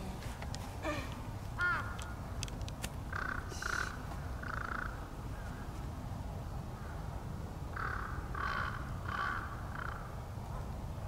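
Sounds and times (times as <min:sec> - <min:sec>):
crow cawing: 0:01.6 - 0:02.0, 0:03.1 - 0:05.6, 0:07.8 - 0:10.1.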